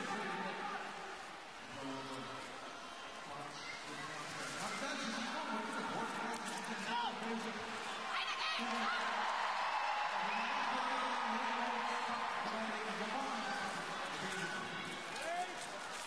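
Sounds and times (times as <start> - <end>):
crowd cheering and shouting: 7.9 - 15.6.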